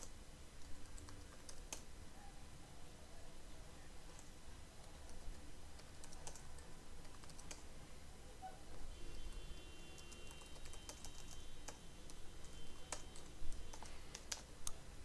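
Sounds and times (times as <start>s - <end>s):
computer keyboard keystrokes: 0.0s - 1.8s, 4.1s - 7.6s, 10.0s - 14.8s.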